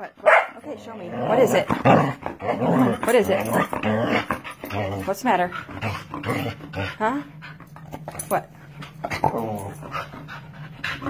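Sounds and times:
dog barking: 0.2 - 0.6.

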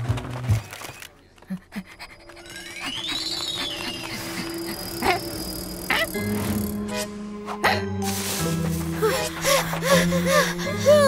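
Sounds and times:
rising and falling whistle tone: 2.5 - 5.9.

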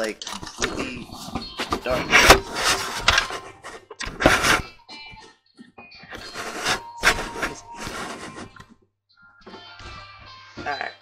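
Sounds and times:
camera handling rubbing and knocking: 0.2 - 4.7.

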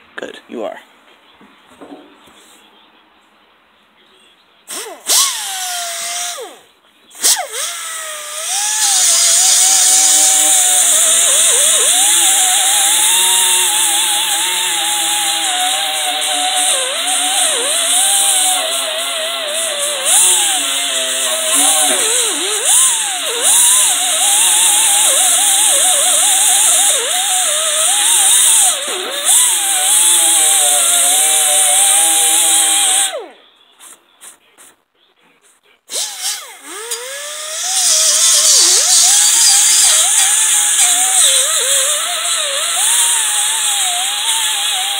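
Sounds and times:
pneumatic die grinder whining: 4.7 - 6.6, 7.2 - 33.4, 35.9 - 44.9.

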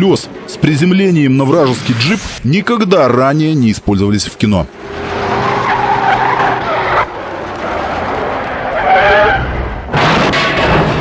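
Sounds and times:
tyres squealing on asphalt: 4.8 - 9.9.

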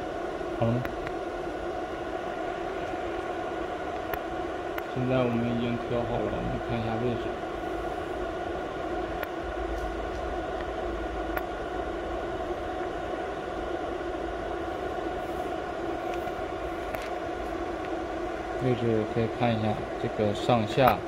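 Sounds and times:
machinery whirring hum: 0.0 - 21.0.

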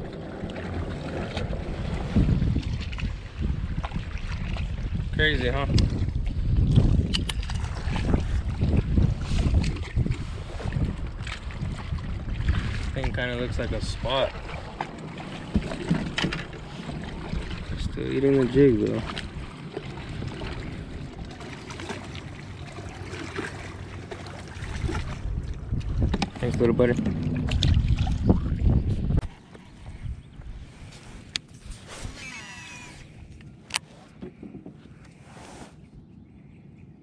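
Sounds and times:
wind rumbling on microphone: 0.0 - 37.0
open-air background: 12.4 - 37.0.

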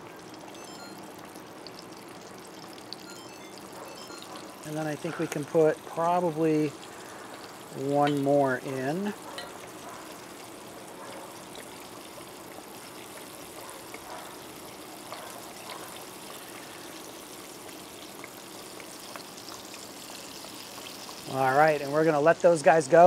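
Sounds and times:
fish deep-frying in oil: 0.0 - 23.0
oil popping: 4.5 - 21.3.

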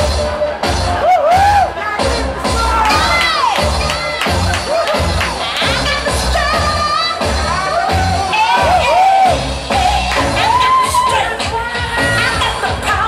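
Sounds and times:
dance music with bass beat: 0.0 - 13.0
crowd cheering and screaming: 0.1 - 12.7.

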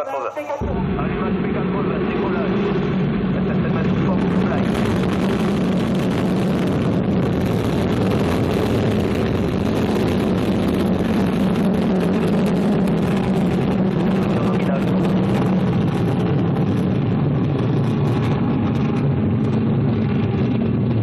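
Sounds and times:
rocket engine roaring: 0.4 - 21.0.

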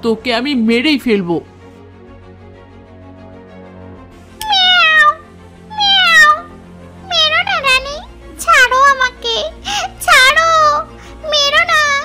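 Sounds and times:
background music: 0.0 - 12.0
cat meowing: 4.4 - 7.7.

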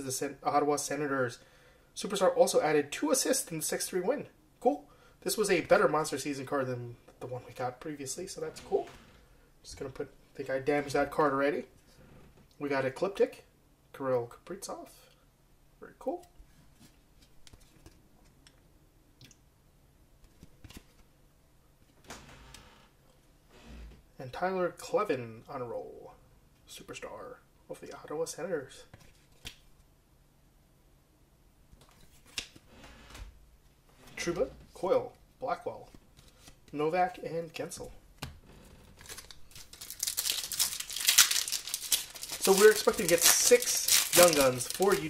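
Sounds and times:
cards rustling: 35.9 - 36.8, 38.8 - 45.0
foil wrapper crinkling and tearing: 38.9 - 45.0.

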